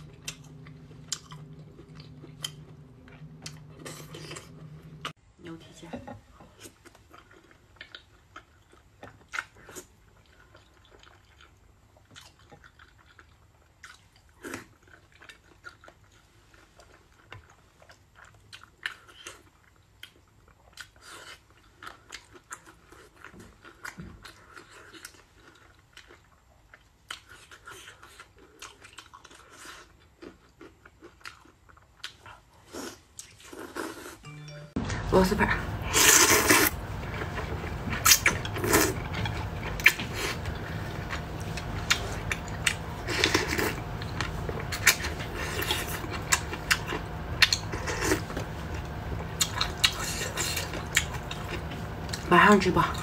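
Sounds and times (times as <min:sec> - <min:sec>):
person chewing wetly: 0:00.0 - 0:05.2, 0:06.6 - 0:34.2, 0:35.9 - 0:52.3.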